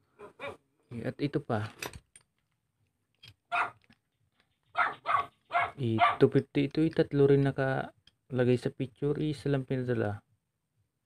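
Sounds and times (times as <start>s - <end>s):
dog barking: 0.2s - 0.6s, 3.5s - 3.8s, 4.7s - 6.2s.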